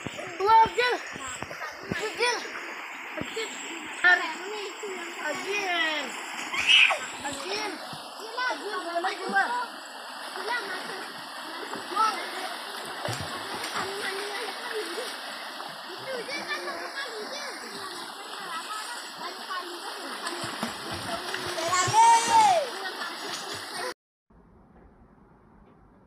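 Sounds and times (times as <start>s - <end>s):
children's voices and calls: 0.0s - 24.0s
water splashing in a stream: 0.0s - 24.0s
child shouting: 6.5s - 7.7s, 21.6s - 22.9s.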